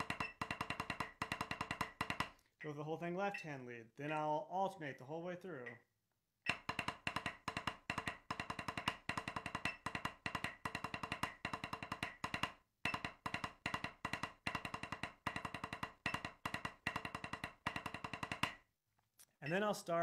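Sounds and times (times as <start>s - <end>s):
drumsticks on a practice pad: 0.0s - 2.4s, 6.5s - 18.7s.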